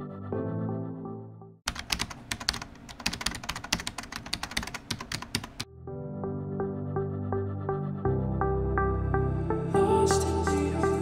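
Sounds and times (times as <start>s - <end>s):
background music: 0.0s - 1.6s, 5.5s - 11.0s
computer keyboard typing: 1.7s - 5.7s.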